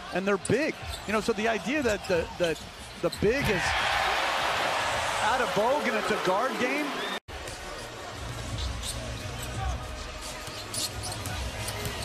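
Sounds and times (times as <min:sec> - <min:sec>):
arena crowd noise: 0:00.0 - 0:12.0
sneaker squeaks: 0:00.8 - 0:01.3, 0:08.6 - 0:09.6, 0:10.3 - 0:12.0.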